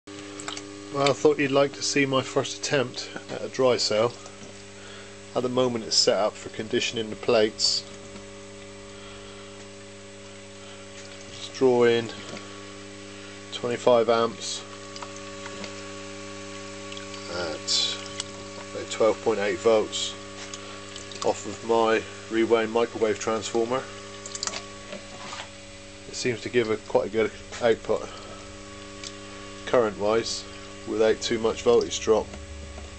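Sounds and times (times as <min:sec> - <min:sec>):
transformer electrical hum: 0:00.1 - 0:32.9.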